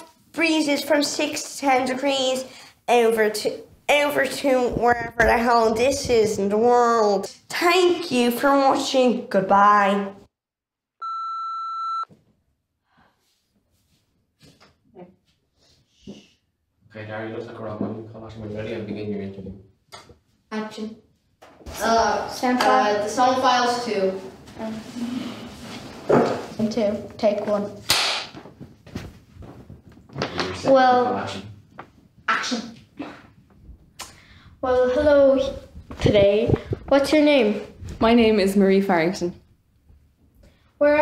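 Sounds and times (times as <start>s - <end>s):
electronic test tone beep: 11.0s - 12.1s.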